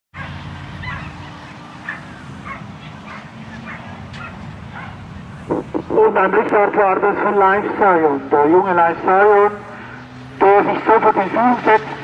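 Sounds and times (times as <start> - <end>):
dogs yelping: 0.2 - 5.4.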